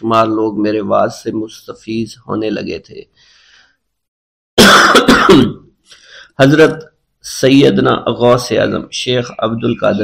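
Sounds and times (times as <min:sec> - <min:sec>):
person coughing loudly: 0:04.6 - 0:05.7.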